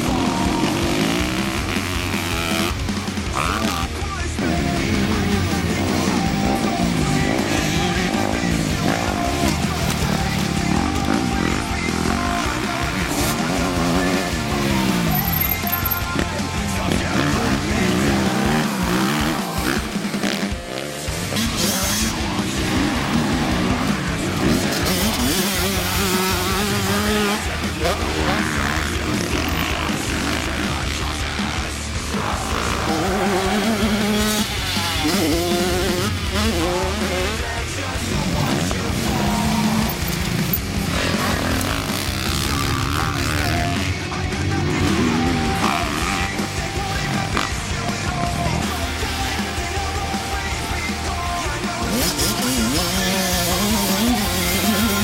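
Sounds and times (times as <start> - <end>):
dirt bike engines revving: 0.0 - 55.0
loud music: 0.0 - 55.0.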